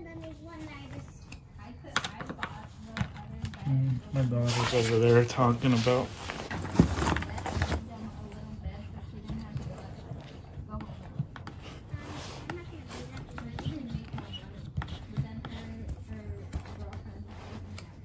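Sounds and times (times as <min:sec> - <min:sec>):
girls talking: 0:00.0 - 0:03.6, 0:07.8 - 0:17.9.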